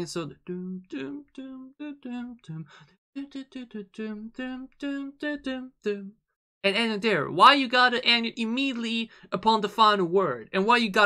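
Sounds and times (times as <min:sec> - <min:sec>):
man humming: 0:00.5 - 0:06.1.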